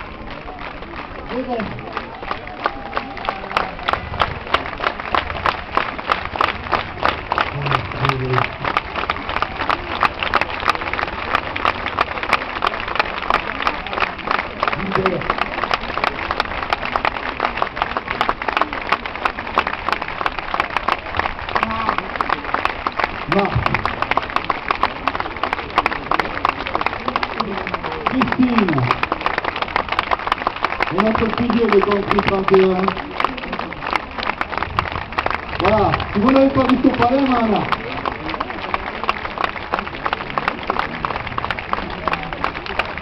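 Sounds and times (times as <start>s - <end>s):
crowd applauding: 0.0s - 43.0s.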